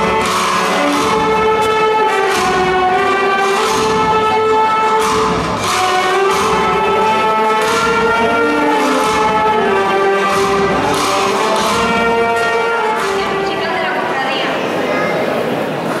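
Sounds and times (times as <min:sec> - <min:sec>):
drum strokes: 0:00.0 - 0:16.0
wind band playing brass chords: 0:00.0 - 0:16.0.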